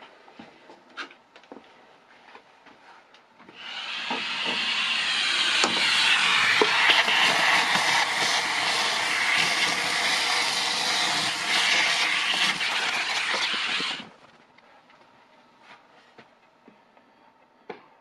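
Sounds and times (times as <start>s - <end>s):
vacuum running with loud hiss: 3.6s - 14.1s.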